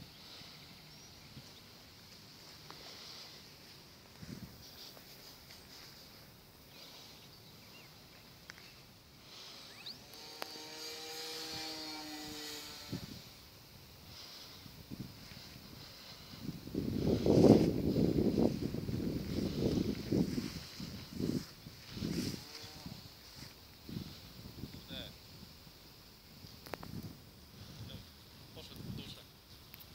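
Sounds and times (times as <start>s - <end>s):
wind gusting on microphone: 4.1s - 4.8s, 11.0s - 13.4s, 14.0s - 25.6s, 26.2s - 29.3s.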